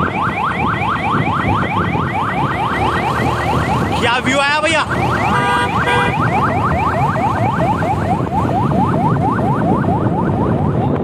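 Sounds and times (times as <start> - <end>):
electronic siren yelping: 0.0 - 11.0
low road noise: 0.0 - 11.0.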